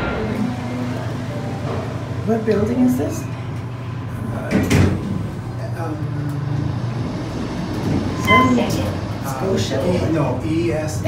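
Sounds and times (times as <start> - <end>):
elevator machinery hum: 0.0 - 11.0
short electronic chime: 8.2 - 8.8.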